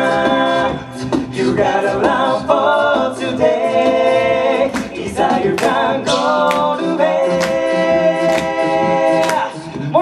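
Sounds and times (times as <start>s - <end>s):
men singing close harmony: 0.0s - 10.0s
vocal percussion hits: 3.8s - 9.7s.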